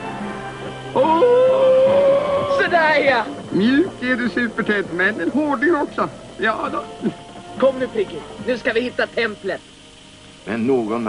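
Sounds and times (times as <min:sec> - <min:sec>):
soft music: 0:00.0 - 0:11.0.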